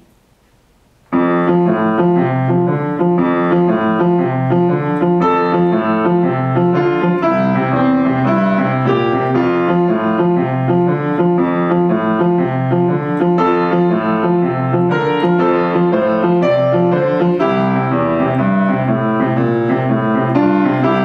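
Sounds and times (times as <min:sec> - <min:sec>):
boogie-woogie piano: 0:01.1 - 0:21.0.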